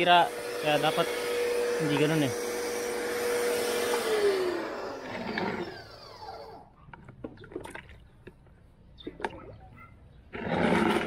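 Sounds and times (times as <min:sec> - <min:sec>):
pressure washer motor humming: 0:00.0 - 0:06.7.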